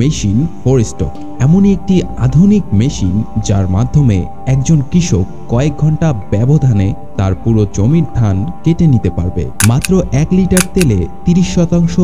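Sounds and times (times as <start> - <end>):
faint background music: 0.0 - 12.0
man narrating: 6.4 - 12.0.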